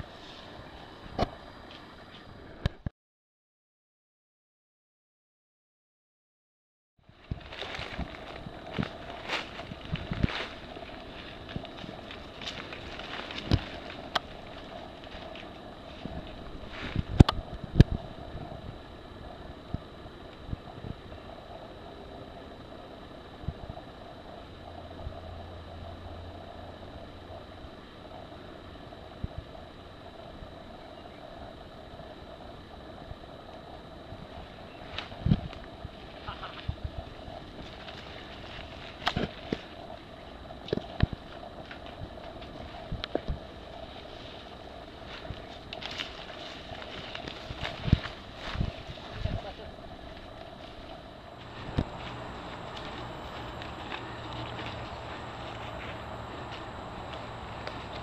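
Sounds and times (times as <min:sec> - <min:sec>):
background hum: 0:00.0 - 0:02.9, 0:07.0 - 0:58.0.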